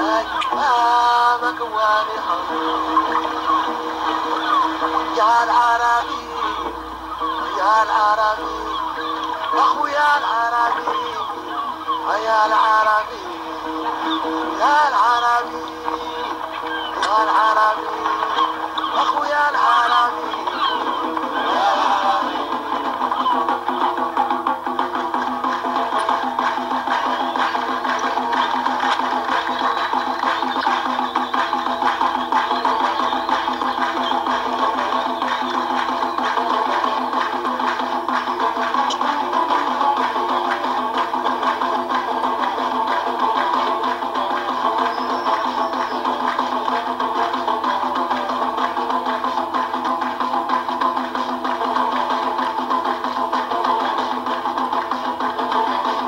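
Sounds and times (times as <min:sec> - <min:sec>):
folk music from small speaker: 0:00.0 - 0:56.0.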